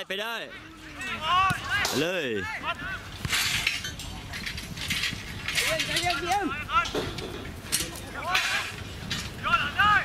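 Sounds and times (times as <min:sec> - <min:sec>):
footballers shouting: 0:00.6 - 0:03.2, 0:08.0 - 0:10.0.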